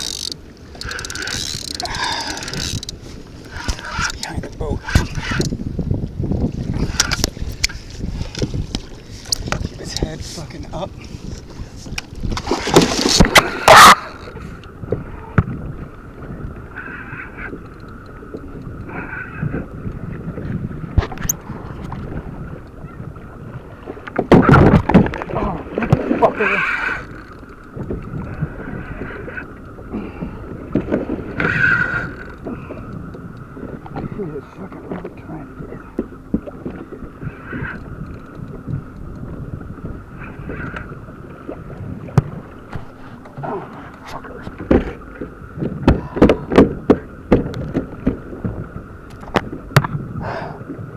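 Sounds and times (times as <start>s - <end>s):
choppy water: 0.0s - 50.9s
wind: 0.0s - 50.9s.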